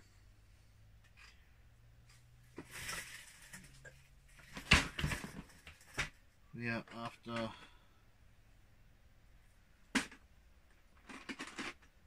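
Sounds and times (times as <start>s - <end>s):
lego bricks clattering: 10.9s - 12.0s.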